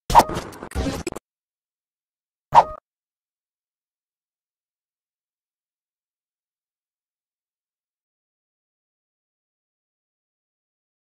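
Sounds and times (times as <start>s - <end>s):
short pop sound effect: 2.6s - 2.8s.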